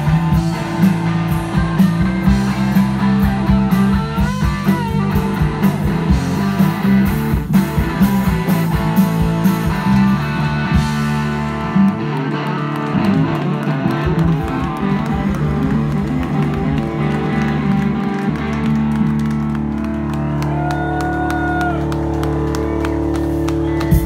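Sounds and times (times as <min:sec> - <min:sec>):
bass guitar: 0:00.0 - 0:24.0
electric guitar: 0:00.0 - 0:24.0.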